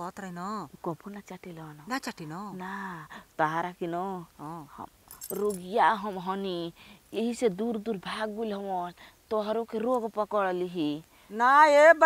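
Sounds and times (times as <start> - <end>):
bangles jingling: 5.0 - 6.0.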